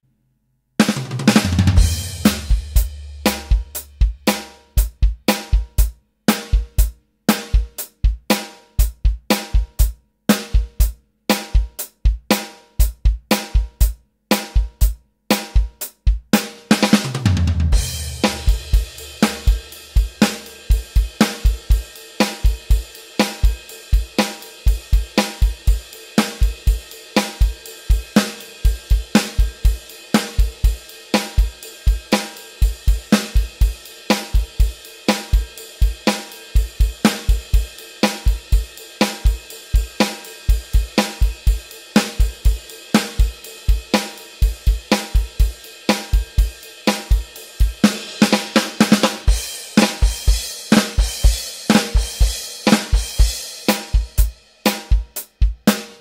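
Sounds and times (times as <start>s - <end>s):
electronic drum kit rock groove: 0.8s - 56.0s.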